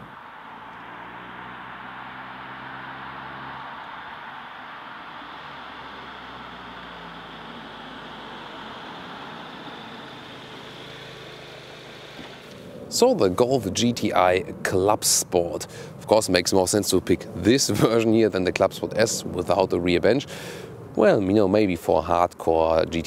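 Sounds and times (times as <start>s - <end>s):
tyre noise on road: 0.0s - 14.0s
car engine running at low revs: 0.0s - 14.7s.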